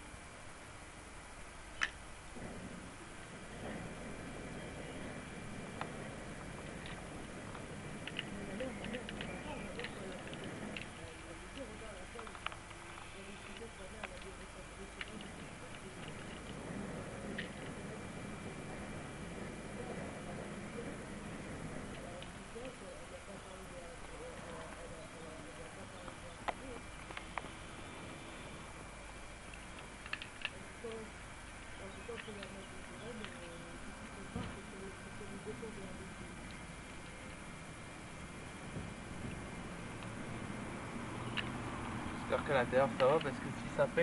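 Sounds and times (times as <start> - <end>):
steady background hiss: 0.0 - 44.0
faint indistinct voices: 2.3 - 44.0.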